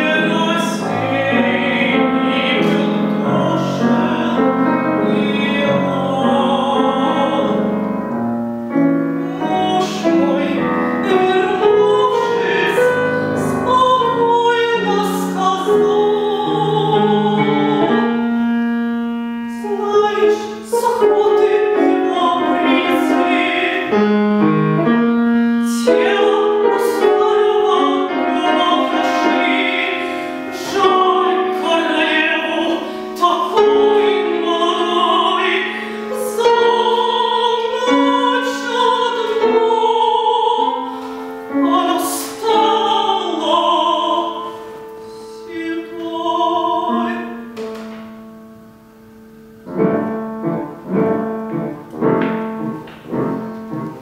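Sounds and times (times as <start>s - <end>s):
person singing: 0.0s - 7.9s, 9.2s - 18.6s, 19.4s - 24.5s, 25.6s - 47.9s
grand piano chords: 0.0s - 54.0s.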